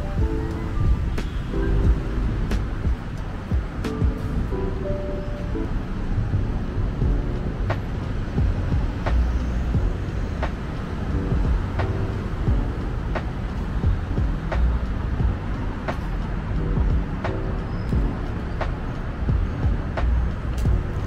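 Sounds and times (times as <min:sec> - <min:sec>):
background music: 0:00.0 - 0:21.0
road traffic rumble: 0:00.0 - 0:21.0.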